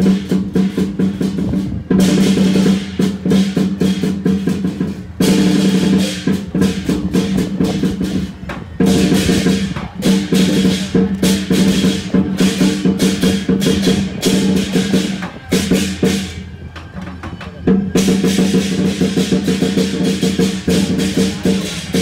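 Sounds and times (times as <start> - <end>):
crashing cymbals: 0.0 - 16.6
drum beaten in fast rolls: 0.0 - 22.0.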